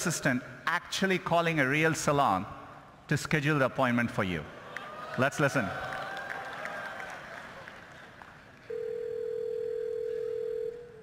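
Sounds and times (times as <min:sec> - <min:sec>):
telephone ringback tone: 0:08.7 - 0:11.0.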